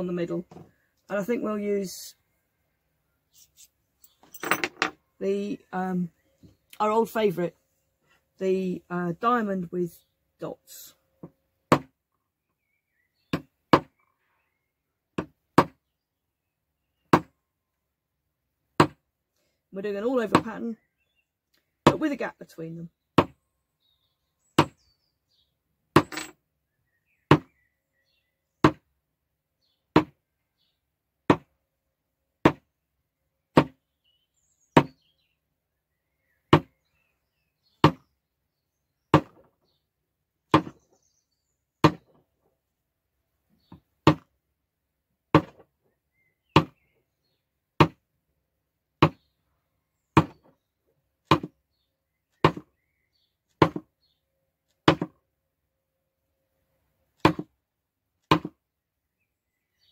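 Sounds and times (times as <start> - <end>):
mallet striking leather stamp: 11.7 - 11.9, 18.8 - 19.0, 40.5 - 40.7, 45.4 - 45.6, 50.2 - 50.4, 51.3 - 51.5, 52.4 - 52.6, 53.6 - 53.8, 54.8 - 55.1, 58.3 - 58.5.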